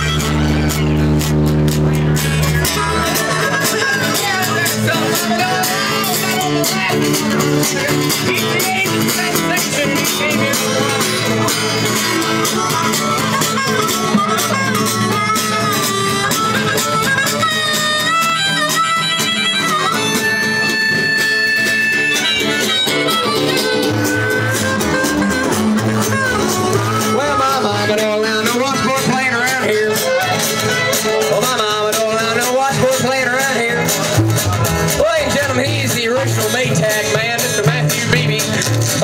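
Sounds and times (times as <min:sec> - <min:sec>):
acoustic guitar: 0:00.0 - 0:39.0
harmonica wavering notes: 0:00.0 - 0:39.0.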